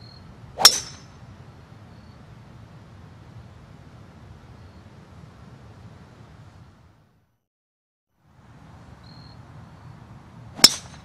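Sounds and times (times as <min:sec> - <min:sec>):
golf club striking ball: 0:00.6 - 0:01.2, 0:10.6 - 0:11.0.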